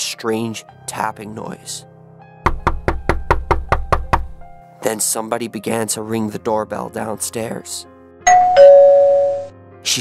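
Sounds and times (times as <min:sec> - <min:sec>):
background music: 0:00.0 - 0:10.0
rapid sharp knocking: 0:02.4 - 0:04.4.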